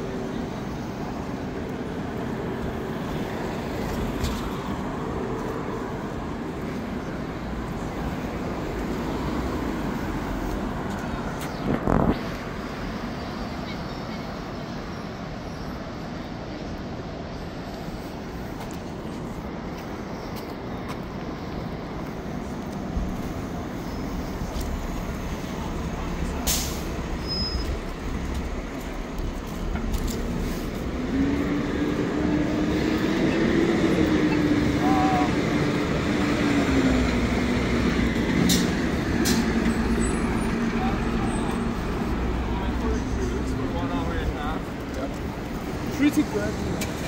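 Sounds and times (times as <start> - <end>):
large vehicle low hum: 0.0 - 47.0
passing vehicles: 0.0 - 47.0.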